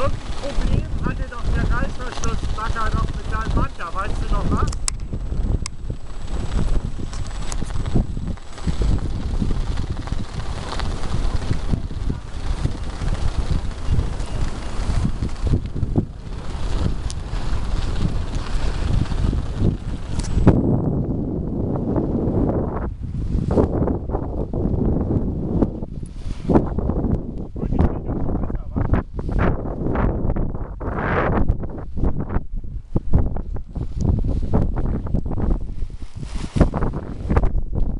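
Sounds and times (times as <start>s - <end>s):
wind buffeting microphone: 0.0s - 37.9s.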